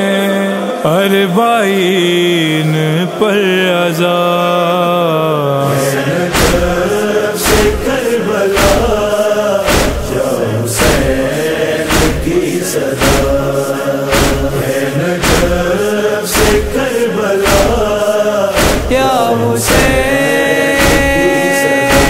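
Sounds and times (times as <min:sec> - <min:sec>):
men chanting in chorus: 0:00.0 - 0:22.0
steady beat striking: 0:06.4 - 0:22.0.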